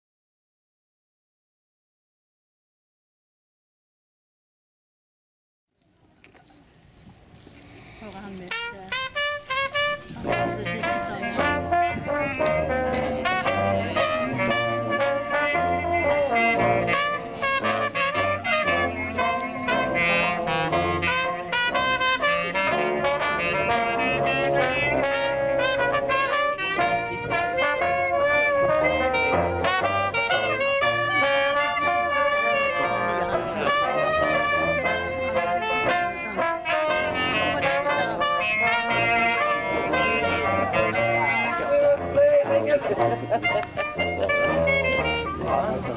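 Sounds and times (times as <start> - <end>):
jazz band playing: 8.0 - 45.9
tuba bass notes: 8.5 - 45.9.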